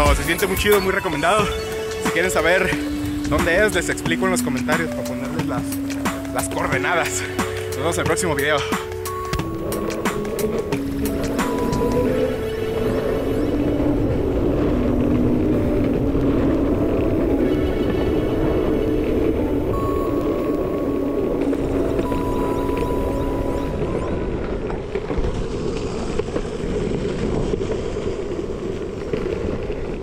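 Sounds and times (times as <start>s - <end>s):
background music: 0.0s - 24.2s
longboard wheels rumbling on concrete: 0.0s - 30.0s.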